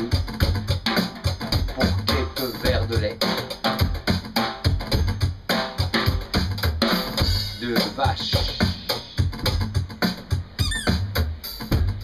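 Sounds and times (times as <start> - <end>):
drum kit beat with rod sticks: 0.0 - 12.0
squeaky gliding sound: 10.6 - 11.0.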